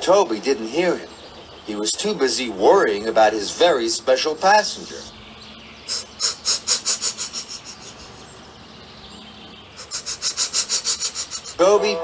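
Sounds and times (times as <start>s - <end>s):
cartoon steam locomotive chuffing: 9.8s - 12.0s.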